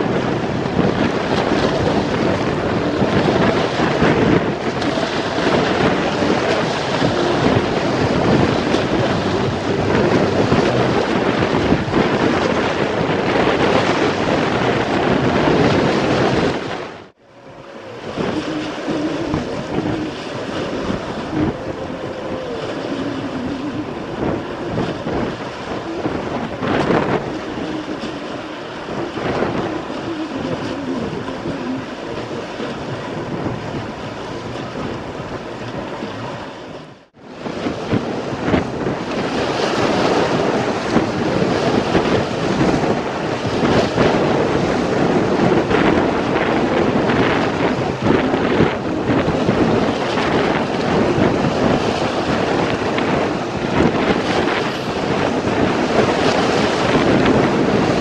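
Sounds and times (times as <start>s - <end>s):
waves slapping concrete embankment: 0.0s - 58.0s
wind buffeting microphone: 0.0s - 58.0s.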